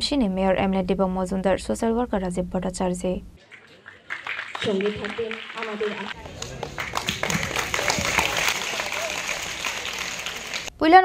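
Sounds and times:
audience applauding: 0:03.4 - 0:10.7.

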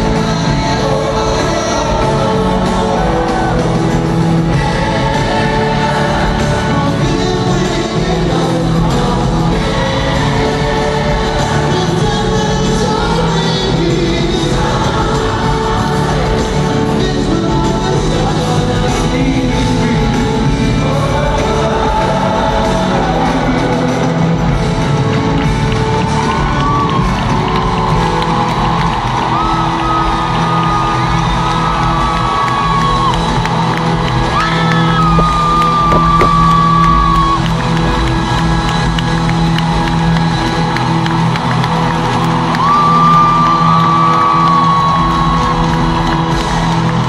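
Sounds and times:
live band music: 0:00.0 - 0:47.0
stadium crowd cheering: 0:00.0 - 0:47.0.

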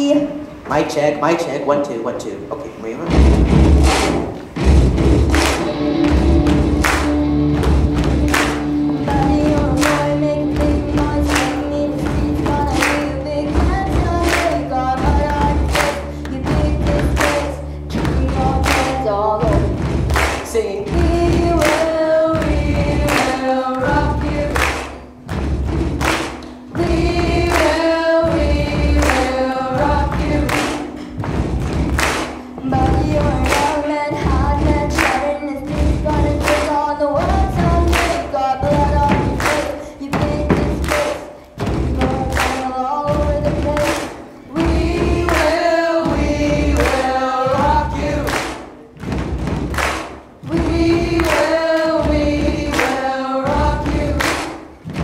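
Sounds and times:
repeated thumps: 0:03.1 - 0:11.4, 0:12.0 - 0:55.0
hand claps: 0:03.8 - 0:55.0
choir singing: 0:20.8 - 0:24.8, 0:26.7 - 0:30.9, 0:44.5 - 0:48.6, 0:50.4 - 0:54.6.

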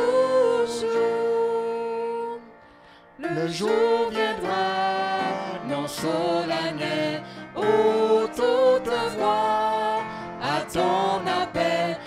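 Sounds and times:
voices singing a hymn: 0:00.0 - 0:02.5, 0:03.2 - 0:12.0.

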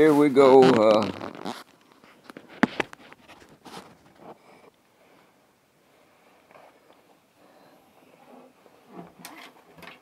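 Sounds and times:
faint rustling of guitar handling: 0:00.0 - 0:05.3.

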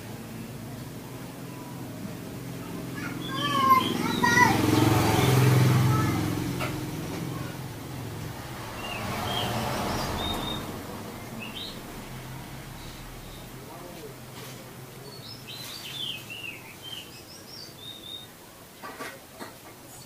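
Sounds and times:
bird singing and chirping: 0:03.1 - 0:04.4, 0:08.8 - 0:11.9, 0:15.0 - 0:18.3.

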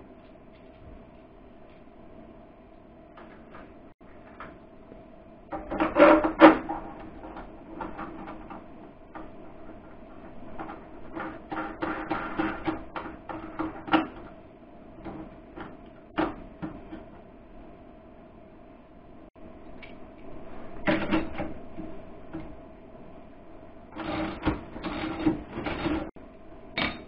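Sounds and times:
steady electrical hum: 0:00.0 - 0:27.0.

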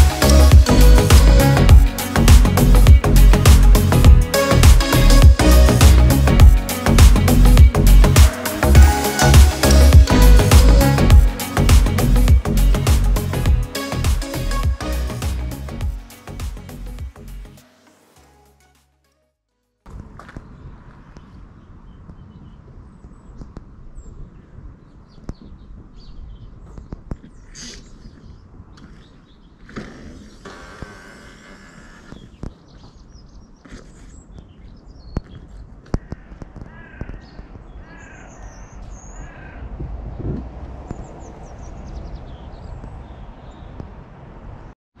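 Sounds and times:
low rumble: 0:00.0 - 0:13.6, 0:39.2 - 0:43.1
small birds chirping: 0:20.4 - 0:44.2
crows cawing: 0:35.8 - 0:39.7.

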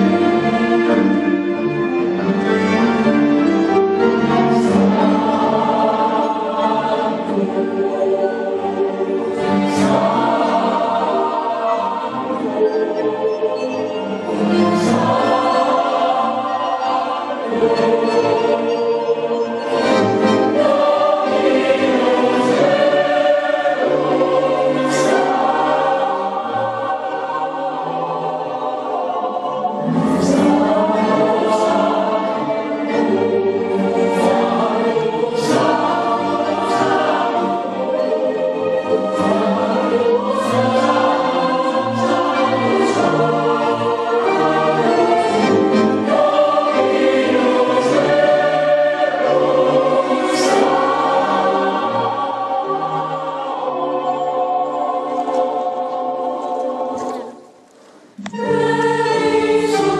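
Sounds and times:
mixed choir singing: 0:00.0 - 0:57.6, 0:58.2 - 0:59.9.

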